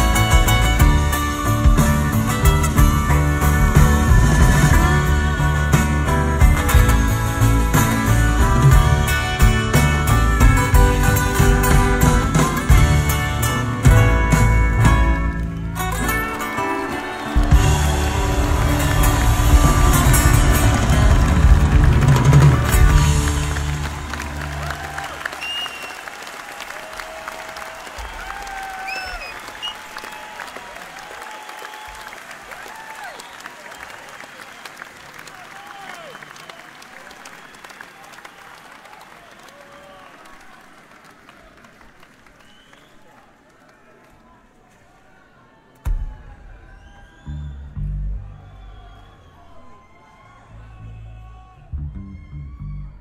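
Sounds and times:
live band chord: 0.0 - 24.7
audience applauding and cheering: 0.0 - 53.0.

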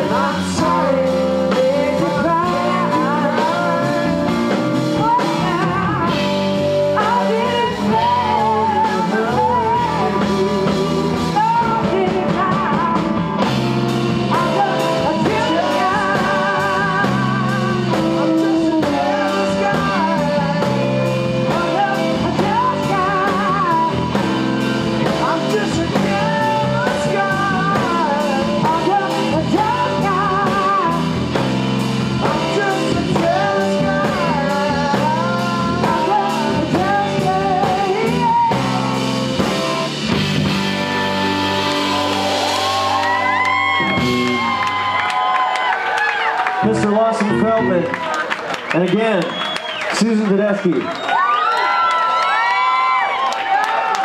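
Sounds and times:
woman singing with vibrato: 0.0 - 31.5, 32.1 - 39.1
rock blues band playing: 0.0 - 50.4.

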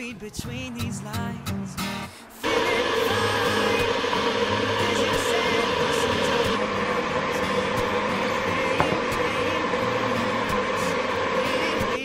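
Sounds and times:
electric kettle rushing noise: 2.4 - 12.0.

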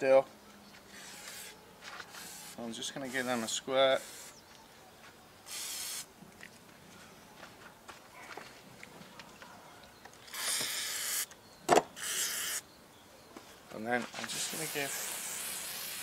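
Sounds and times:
aerosol spray hiss: 5.5 - 6.1, 14.2 - 16.0.

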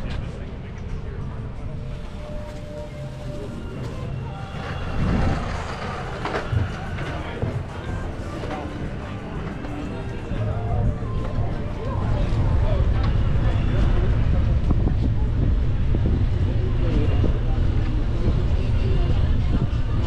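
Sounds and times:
passers-by talking: 0.0 - 20.0
steady low rumble: 0.0 - 20.0
music playing: 2.0 - 16.2.

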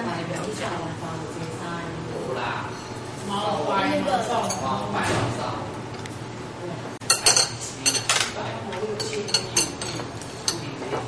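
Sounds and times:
cutlery clinking on china plates: 7.1 - 8.4, 9.0 - 11.0.

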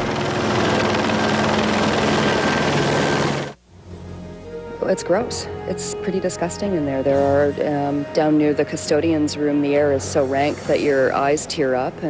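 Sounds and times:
helicopter noise: 0.0 - 3.6.

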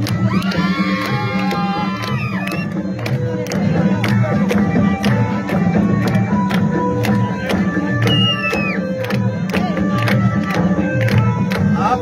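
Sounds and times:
drum-led folk music: 0.0 - 12.0
crowd cheering and whooping: 0.3 - 2.7.

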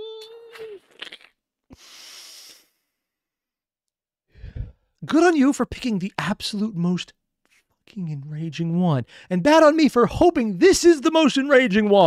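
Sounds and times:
man breathing into microphone: 4.3 - 4.9.

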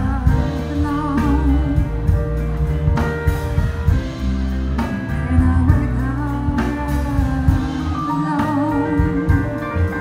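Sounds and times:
woman singing: 0.0 - 2.3, 4.1 - 10.0
live band playing soul ballad: 0.0 - 10.0.

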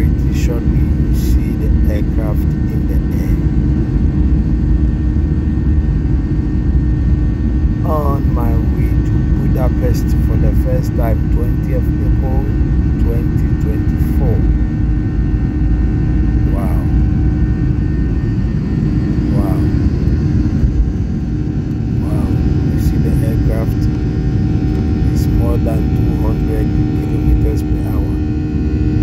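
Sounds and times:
jet engines rumbling in cabin: 0.0 - 29.0.

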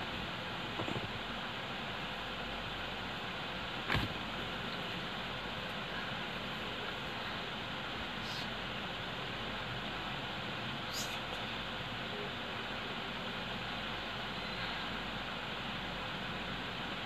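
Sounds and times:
room noise hiss: 0.0 - 17.0.

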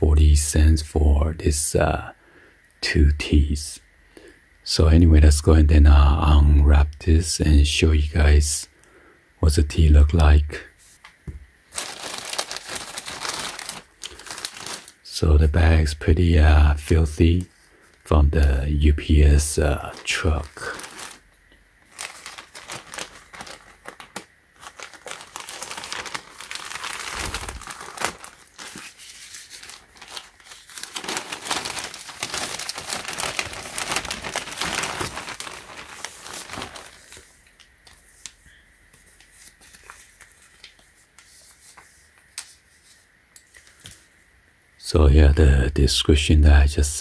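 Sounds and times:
plastic bag crinkling: 11.7 - 15.2, 19.0 - 37.6
scissors cutting plastic bag: 22.0 - 28.9, 29.6 - 37.0.

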